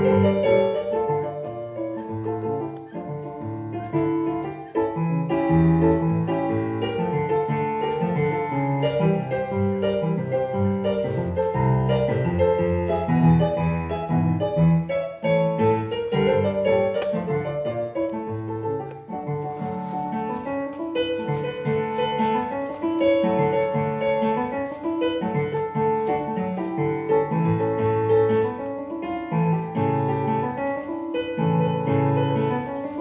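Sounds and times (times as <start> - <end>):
keyboard playing piano melody: 0.0 - 33.0.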